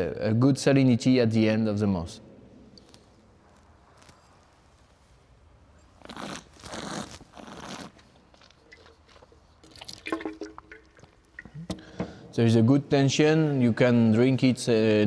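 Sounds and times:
person slurping wine: 6.0 - 11.0.

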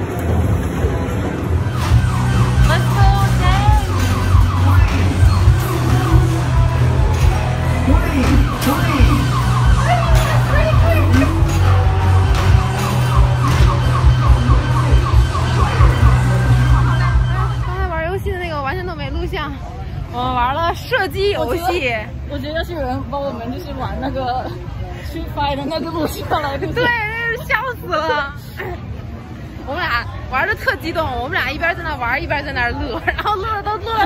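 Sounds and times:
steady deep hum: 0.0 - 17.8
warbling electronic arcade tones: 1.3 - 18.0.

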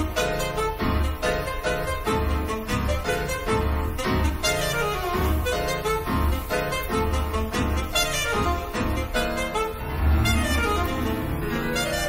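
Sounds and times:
alto saxophone: 0.0 - 12.0
piano: 0.0 - 12.0.

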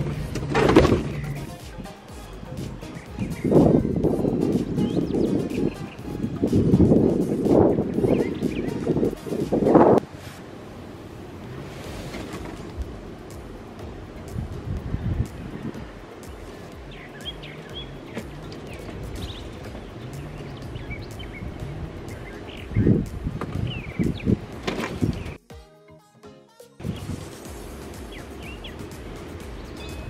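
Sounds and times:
background music: 0.0 - 10.3, 11.0 - 30.0
wind buffeting microphone: 0.0 - 25.4, 26.8 - 30.0
bird chirps: 0.8 - 9.8, 15.4 - 25.4, 26.8 - 30.0.

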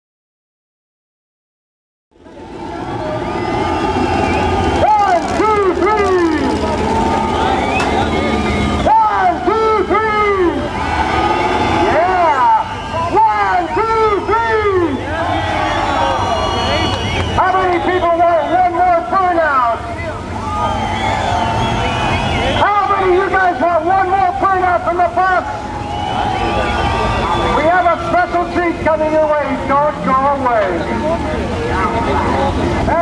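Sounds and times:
low engine drone: 2.1 - 32.9
car engine revving: 2.2 - 13.1.

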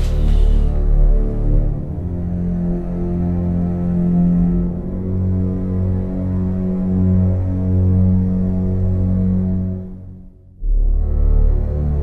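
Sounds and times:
droning bass pad score: 0.0 - 12.0.

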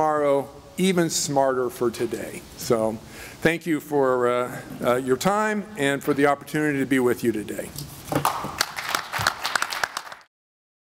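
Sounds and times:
audience applauding: 8.2 - 10.3.

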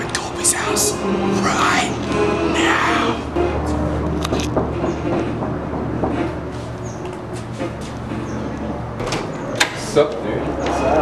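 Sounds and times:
fist knocking on wooden door: 4.5 - 6.5.

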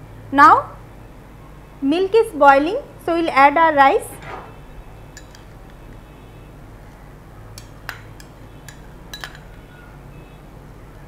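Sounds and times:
kitchenware clinking: 4.2 - 5.8, 7.6 - 9.8.

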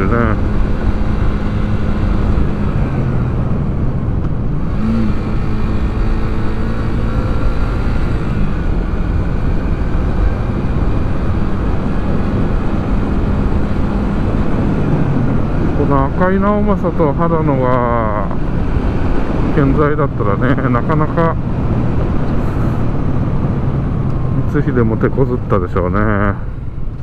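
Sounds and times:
wind rushing over microphone: 0.0 - 24.6
motorcycle engine cruising: 0.0 - 27.0.

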